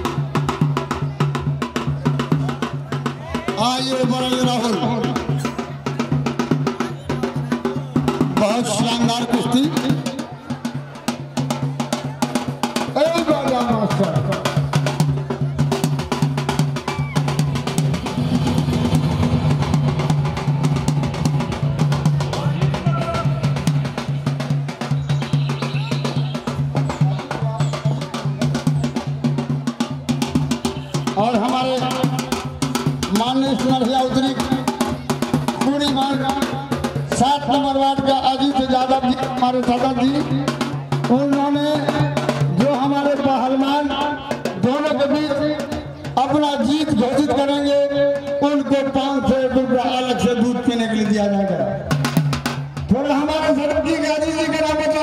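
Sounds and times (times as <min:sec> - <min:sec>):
fast drumming: 0:00.0 - 0:55.0
men calling: 0:20.5 - 0:28.4.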